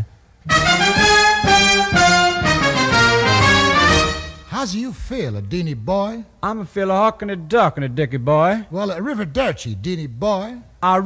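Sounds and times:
brass instruments playing held notes: 0.4 - 4.6.

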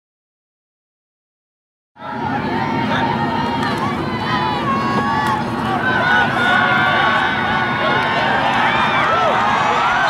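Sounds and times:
crowd talking and shouting: 2.0 - 10.0.

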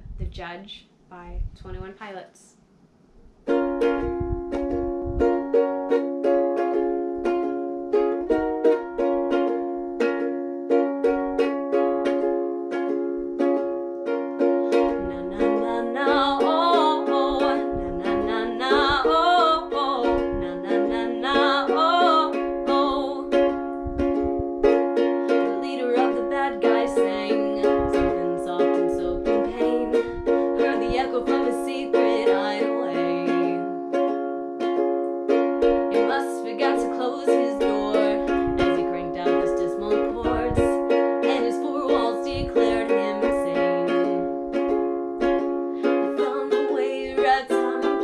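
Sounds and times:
ukulele strumming: 3.4 - 48.0
person singing wordless melody: 14.4 - 23.5, 25.1 - 33.8, 35.9 - 44.3, 45.7 - 48.0.

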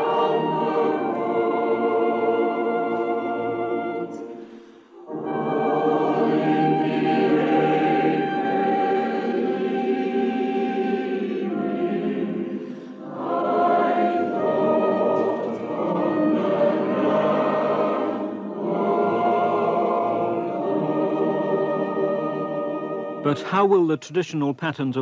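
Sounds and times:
choir singing held chords: 0.0 - 23.6.

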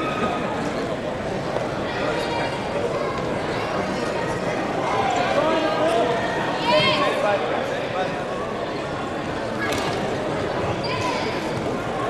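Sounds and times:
overlapping voices and chatter: 0.0 - 12.0.

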